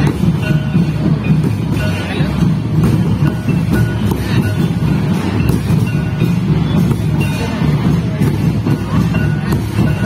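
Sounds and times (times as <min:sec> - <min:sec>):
low drum rumble: 0:00.0 - 0:10.0.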